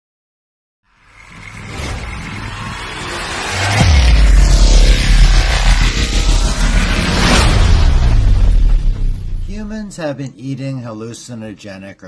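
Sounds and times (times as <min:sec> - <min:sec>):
deep falling boom: 0:01.0 - 0:09.9
whooshes: 0:01.0 - 0:09.9
heavy low rumble: 0:01.0 - 0:10.0.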